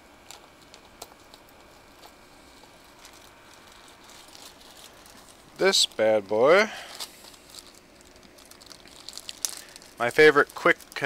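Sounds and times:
plastic bag crinkling: 0.2 - 11.0.

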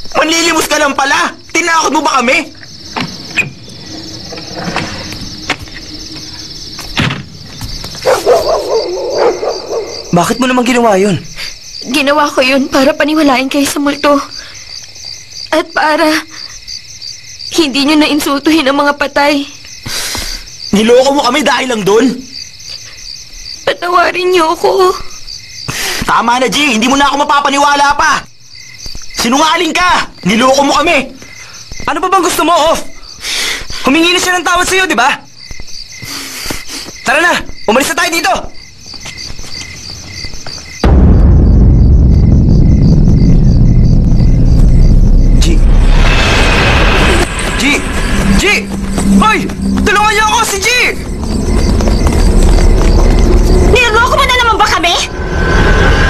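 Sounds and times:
insects chirring: 0.0 - 56.0
hiss: 36.0 - 37.0, 45.5 - 49.2
steady high chirring: 40.8 - 56.0.

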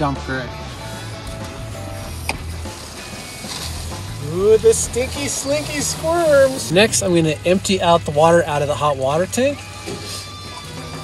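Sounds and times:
soft background music: 0.0 - 11.0
waste water rushing through hose: 0.7 - 11.0.

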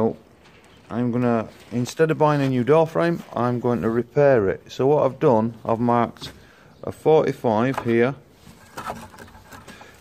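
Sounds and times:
man speaking: 0.0 - 8.3.

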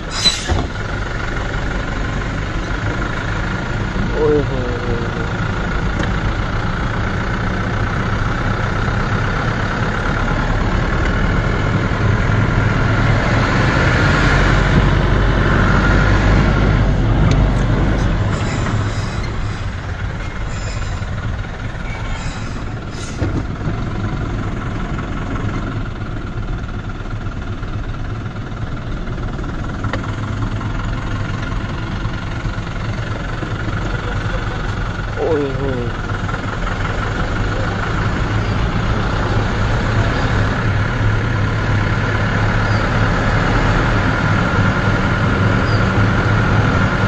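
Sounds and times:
vehicle engine and road noise: 0.0 - 47.0.

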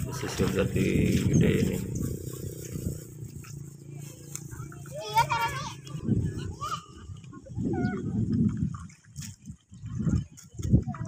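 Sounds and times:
low rumbling on microphone: 0.0 - 11.0
children calling: 4.2 - 8.3.

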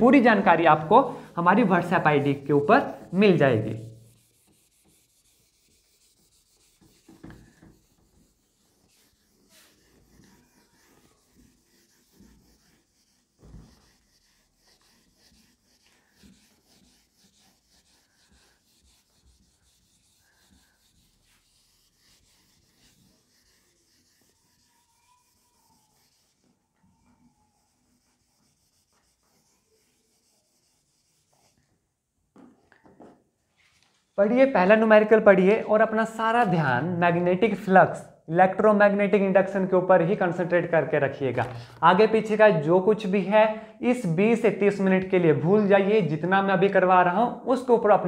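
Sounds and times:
cloth wiping a whiteboard: 0.0 - 32.4, 33.0 - 35.4.

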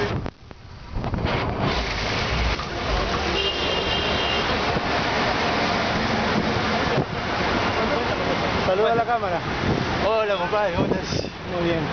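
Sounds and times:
bicycle road noise in traffic: 0.0 - 11.9
wind on microphone: 9.0 - 10.0.

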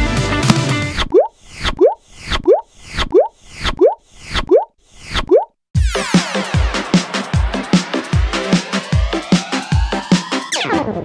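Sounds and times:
background music: 0.0 - 1.0, 5.8 - 11.0
cartoon pop bloops: 1.1 - 2.6, 5.3 - 5.6
electronic dance music: 5.8 - 11.0.

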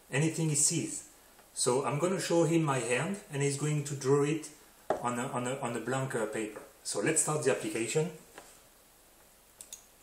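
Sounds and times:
computer clicks: 9.6 - 10.0.

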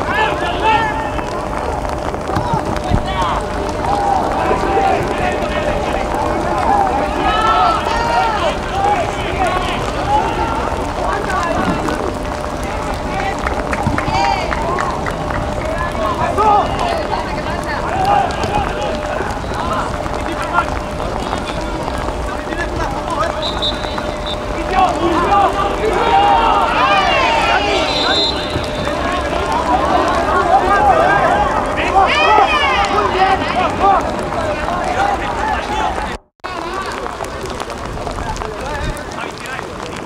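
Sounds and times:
players shouting: 0.0 - 40.0
steady background noise: 0.0 - 40.0.

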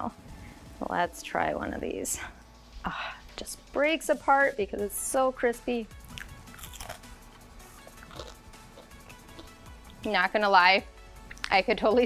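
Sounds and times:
crunching and chewing bacon: 6.0 - 10.0.

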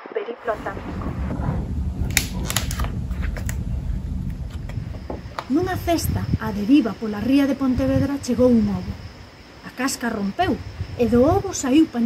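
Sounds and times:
steady low rumble: 0.5 - 12.0.

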